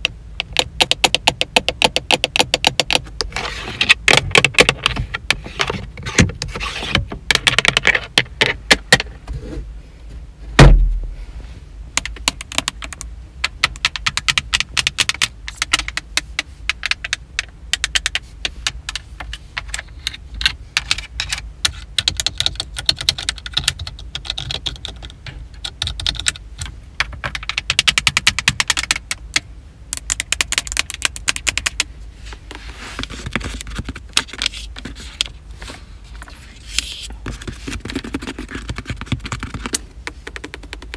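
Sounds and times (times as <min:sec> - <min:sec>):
fingernails tapping on plastic: 0:00.0 - 0:03.0
heavy thump: 0:10.5 - 0:11.2.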